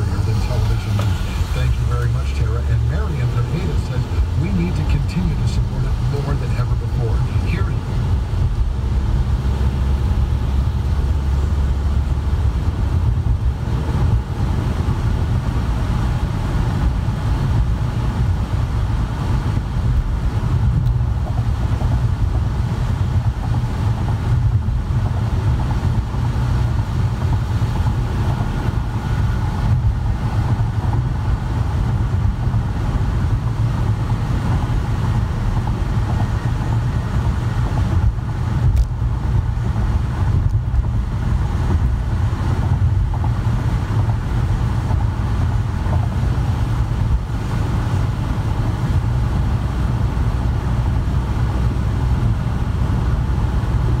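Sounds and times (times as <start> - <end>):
engine and tyres rumbling: 0.0 - 54.0.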